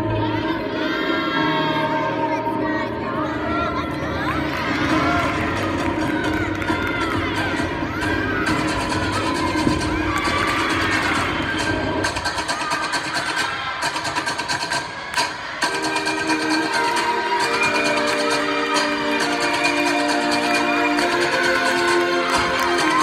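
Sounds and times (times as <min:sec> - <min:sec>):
people cheering and shouting: 0:00.0 - 0:23.0
music with steady beat: 0:04.9 - 0:23.0.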